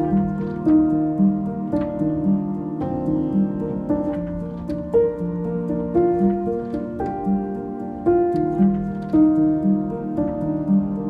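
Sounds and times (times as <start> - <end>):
slow gentle piano music: 0.0 - 11.0.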